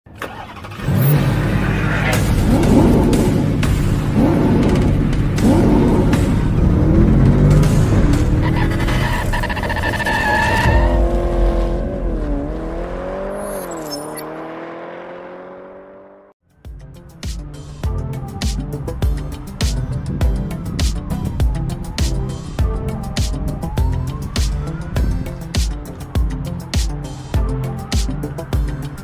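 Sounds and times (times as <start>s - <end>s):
car engine revving: 0.2s - 16.4s
music: 1.7s - 11.0s, 16.4s - 29.0s.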